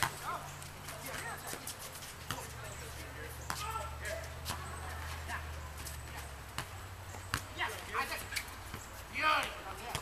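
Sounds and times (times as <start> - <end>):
distant players' voices: 0.0 - 10.0.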